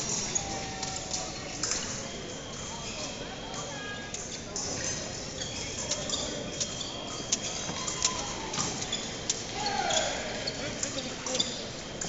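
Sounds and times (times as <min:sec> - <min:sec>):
murmur of voices echoing: 0:00.0 - 0:12.0.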